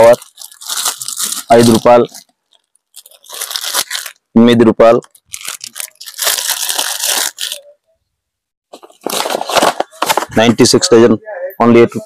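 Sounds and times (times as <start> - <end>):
plastic packaging crinkling: 0.0 - 7.8, 8.7 - 10.3.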